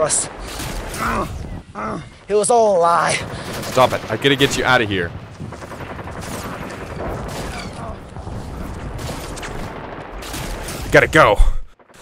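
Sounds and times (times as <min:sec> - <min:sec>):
rapid gunfire: 0:00.1 - 0:01.2, 0:03.0 - 0:11.2.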